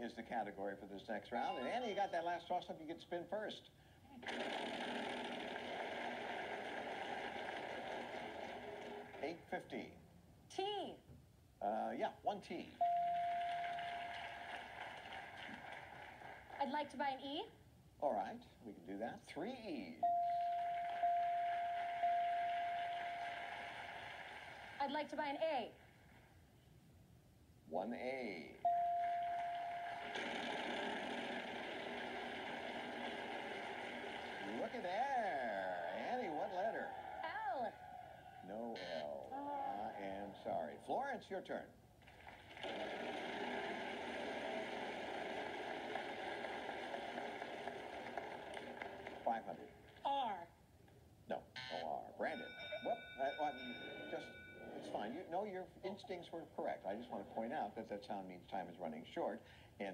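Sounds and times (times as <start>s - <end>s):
studio audience noise: 29.3s - 38.5s, 42.6s - 49.2s.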